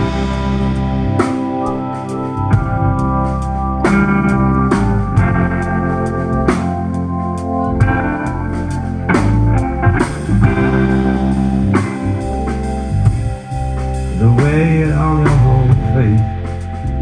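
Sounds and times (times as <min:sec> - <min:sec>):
bass guitar: 0:00.0 - 0:17.0
drum kit: 0:00.0 - 0:17.0
electric guitar: 0:00.0 - 0:17.0
keyboard: 0:00.0 - 0:17.0.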